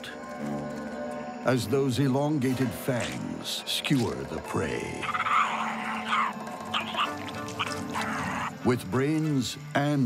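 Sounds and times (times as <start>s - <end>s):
rasping chewing sound effect: 5.0s - 8.5s.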